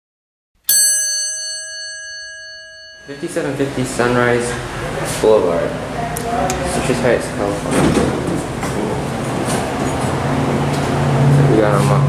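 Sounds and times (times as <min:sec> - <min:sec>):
bell-like chime ringing: 0:00.7 - 0:04.3.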